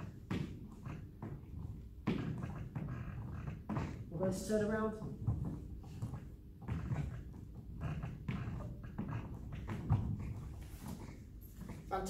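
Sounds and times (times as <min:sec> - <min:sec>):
hands and feet patting wooden floor: 0:00.0 - 0:12.0.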